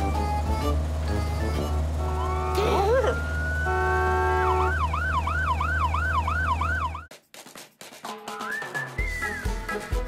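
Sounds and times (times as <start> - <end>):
warbling siren: 2.0 - 7.1.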